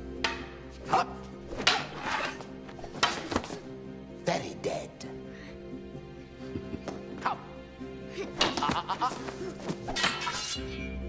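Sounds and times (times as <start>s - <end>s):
soundtrack music: 0.0s - 11.0s
wooden swords clacking: 0.2s - 3.7s, 8.3s - 9.1s, 9.7s - 10.6s.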